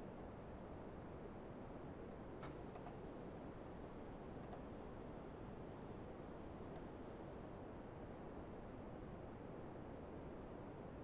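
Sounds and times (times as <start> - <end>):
steady low hiss: 0.0 - 11.0
computer mouse clicks: 2.4 - 3.0, 4.4 - 4.7, 6.6 - 6.9.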